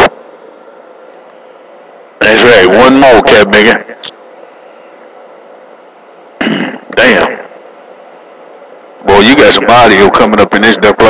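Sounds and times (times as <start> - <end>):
radio receiver hiss: 0.0 - 5.5, 6.4 - 11.0
faint steady hum: 0.0 - 11.0
loud radio transmission burst: 2.2 - 4.2, 6.4 - 7.6.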